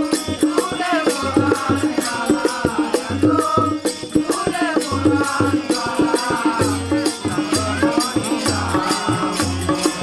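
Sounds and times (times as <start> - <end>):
harmonium: 0.0 - 10.0.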